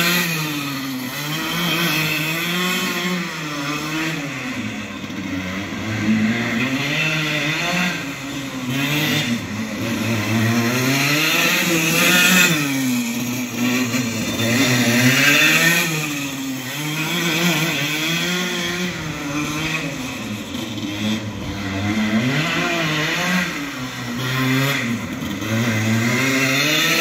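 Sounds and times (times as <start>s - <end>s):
go-kart engine buzzing: 0.0s - 27.0s.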